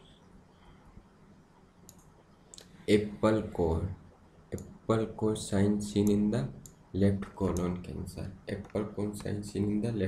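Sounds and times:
man speaking: 0:02.8 - 0:10.0.

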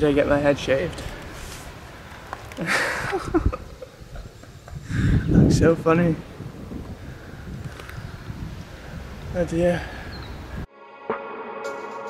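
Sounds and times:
wind buffeting microphone: 0:00.0 - 0:10.7.

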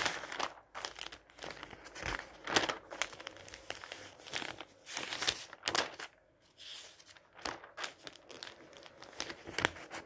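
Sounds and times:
magazine pages turning: 0:00.0 - 0:10.0.

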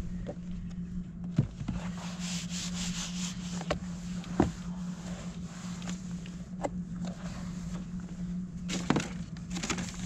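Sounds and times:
palms sliding on paper: 0:01.8 - 0:06.5.

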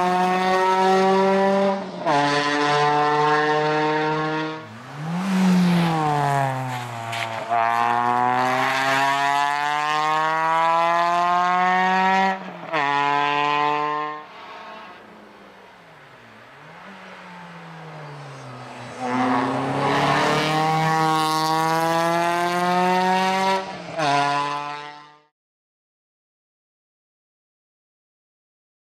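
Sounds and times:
car engine at full throttle: 0:00.0 - 0:25.3.

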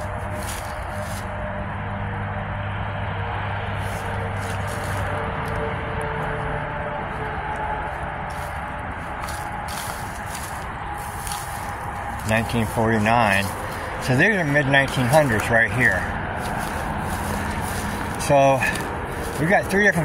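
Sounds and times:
footsteps rustling on grass: 0:00.0 - 0:01.4, 0:03.8 - 0:05.6, 0:07.8 - 0:20.0
low drone: 0:00.0 - 0:20.0
outdoor background hum: 0:00.0 - 0:20.0.

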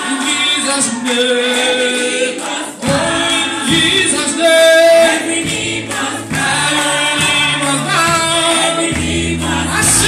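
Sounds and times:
group singing worship song: 0:00.0 - 0:10.0.

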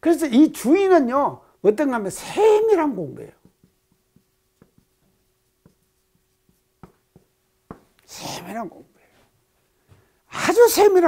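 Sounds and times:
marker tapping on whiteboard: 0:03.2 - 0:08.0.

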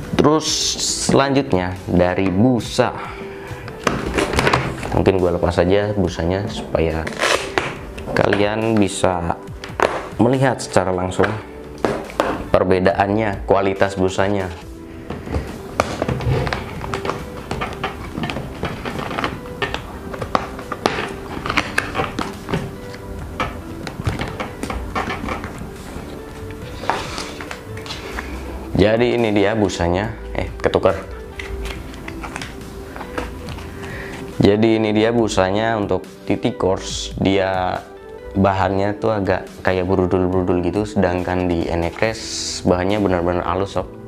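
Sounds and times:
faint background music: 0:00.0 - 0:44.0
helmet knocks and clicks: 0:15.1 - 0:28.0.

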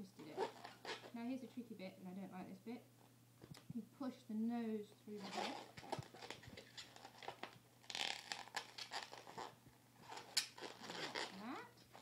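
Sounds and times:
balloon squeaking and rubbing: 0:00.3 - 0:01.2, 0:05.2 - 0:12.0.

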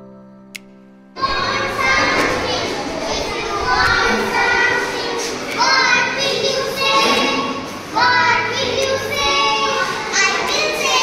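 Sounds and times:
children chanting a rhyme: 0:01.2 - 0:11.0.

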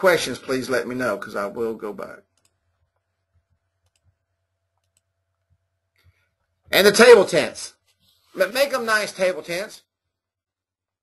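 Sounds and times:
person speaking: 0:00.0 - 0:02.6, 0:06.6 - 0:10.0
low steady hum: 0:00.0 - 0:11.0
computer mouse clicks: 0:02.3 - 0:03.0, 0:03.8 - 0:04.2, 0:04.8 - 0:05.1.

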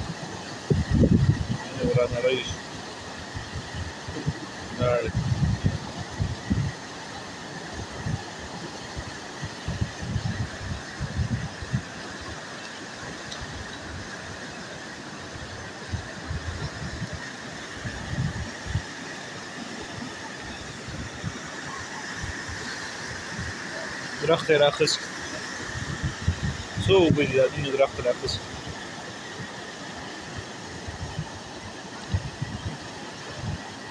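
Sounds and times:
wind buffeting microphone: 0:00.0 - 0:02.6, 0:03.2 - 0:06.8, 0:07.7 - 0:12.4, 0:15.3 - 0:19.0, 0:24.7 - 0:29.5, 0:30.4 - 0:33.9
floodwater rushing: 0:00.0 - 0:33.9.

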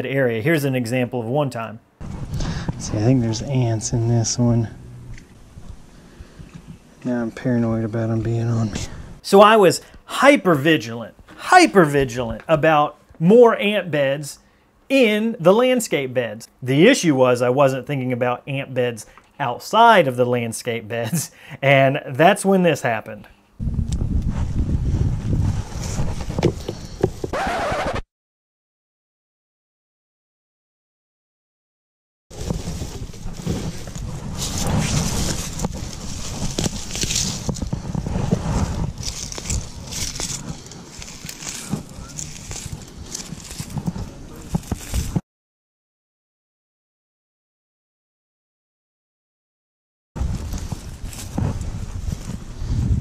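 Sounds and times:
camera handling rumble: 0:02.0 - 0:02.9, 0:32.4 - 0:45.2
wind buffeting microphone: 0:23.6 - 0:26.4, 0:50.2 - 0:53.0
plant stems rustling: 0:32.3 - 0:45.2, 0:50.2 - 0:52.8.

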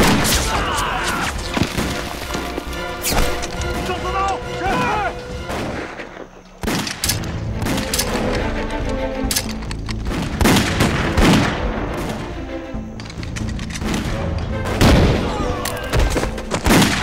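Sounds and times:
background music score: 0:00.0 - 0:17.0
rifle and machine-gun fire: 0:16.6 - 0:17.0.

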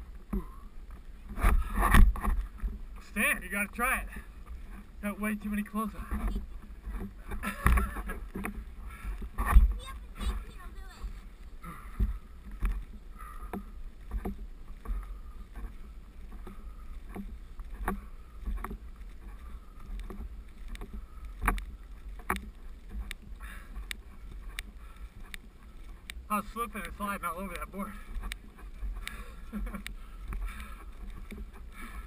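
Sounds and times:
board scraping over snow: 0:00.0 - 0:32.0.

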